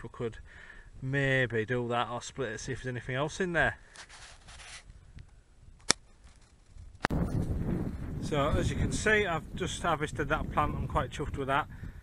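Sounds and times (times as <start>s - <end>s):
faint rustling: 3.8s - 5.4s
wind on microphone: 6.8s - 12.0s.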